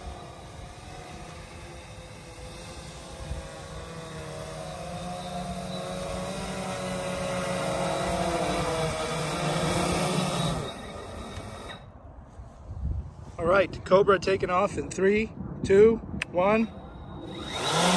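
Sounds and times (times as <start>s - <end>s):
drone propellers buzzing: 0.0s - 11.9s, 16.6s - 17.9s.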